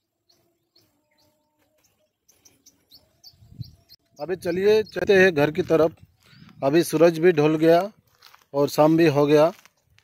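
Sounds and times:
small bird chirping: 0.0 - 6.7.

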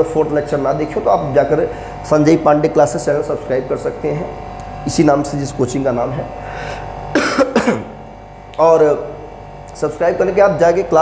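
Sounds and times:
man coughing: 7.1 - 8.0.

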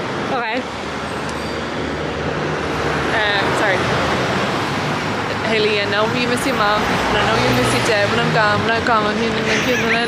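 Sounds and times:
road noise from passing cars: 0.0 - 10.0.

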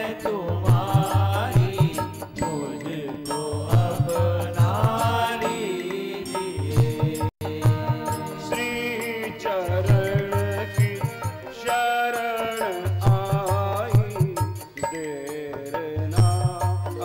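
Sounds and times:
harmonium notes: 0.0 - 17.0
man singing devotional song: 0.0 - 17.0
low drum beats: 0.6 - 2.2, 6.6 - 8.2, 13.0 - 14.5.

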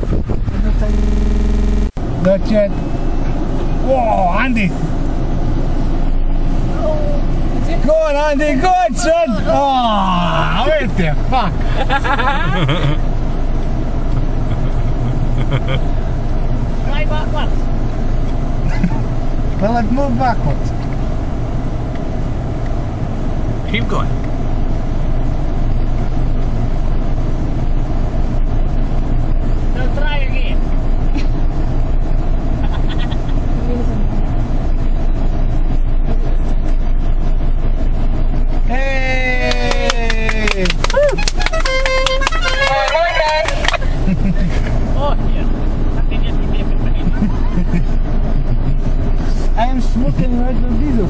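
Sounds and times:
off-road engine rumbling: 0.0 - 51.0
person shouting: 8.6 - 10.7, 38.7 - 41.2, 42.3 - 43.6.

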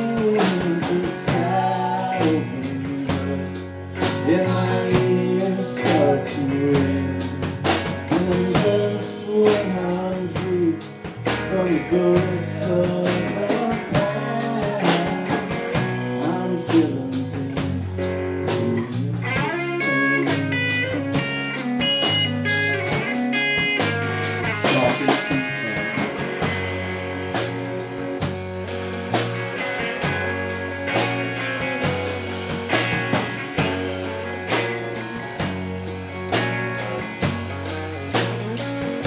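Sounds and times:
bass guitar: 0.0 - 39.0
drum kit beat: 0.0 - 39.0
electric guitars: 0.0 - 39.0
high lead guitar notes: 0.0 - 39.0.

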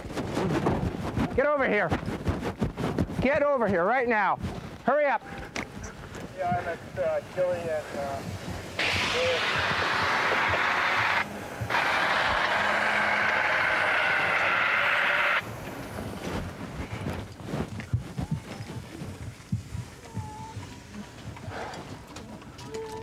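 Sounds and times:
fire extinguisher hissing: 7.7 - 16.7.

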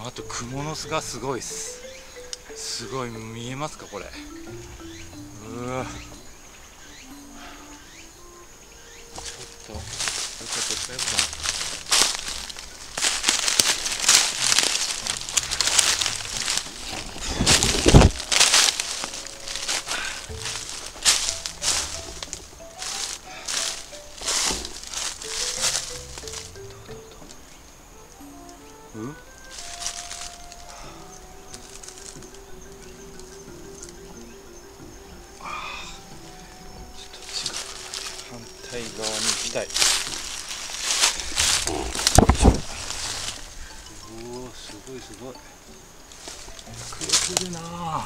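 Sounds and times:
simple background music melody: 0.0 - 48.0
footsteps crunching dry leaves: 8.9 - 27.3, 29.0 - 34.3, 35.4 - 45.4, 46.0 - 48.0.

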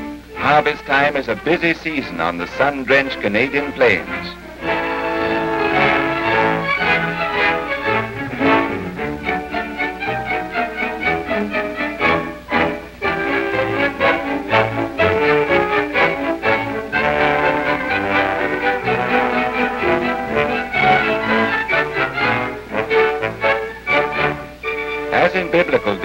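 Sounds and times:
orchestral strings playing: 0.0 - 26.0.

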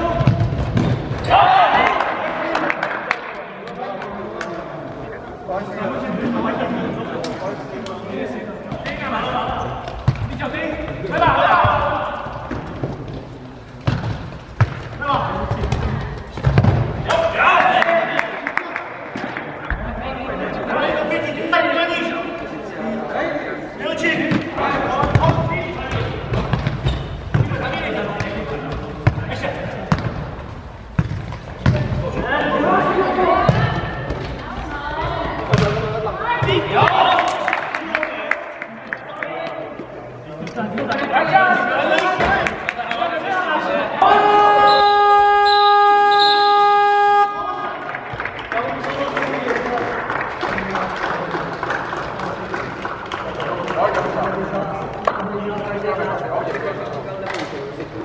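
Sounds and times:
men shouting and talking: 43.6 - 47.6
players calling out: 44.0 - 47.4.

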